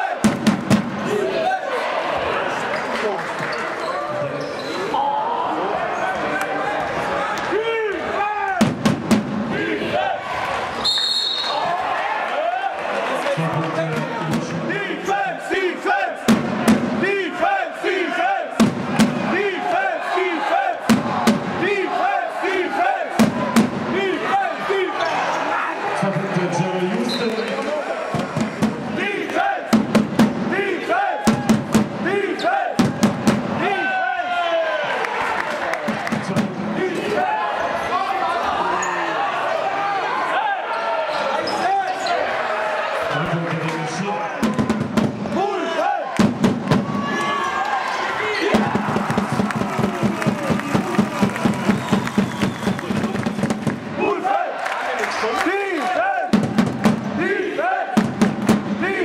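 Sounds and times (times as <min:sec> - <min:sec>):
crowd chanting and shouting: 0:00.0 - 0:59.0
voices of players and spectators: 0:00.0 - 0:59.0.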